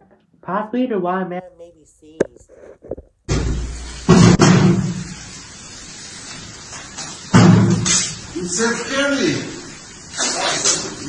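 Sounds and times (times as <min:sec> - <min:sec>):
steady background hiss: 0:00.4 - 0:11.0.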